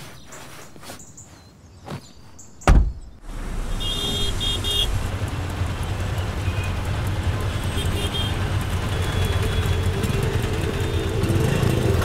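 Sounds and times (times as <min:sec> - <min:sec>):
street traffic noise: 0:00.0 - 0:12.0
car horn toots: 0:03.7 - 0:05.0, 0:07.5 - 0:08.5.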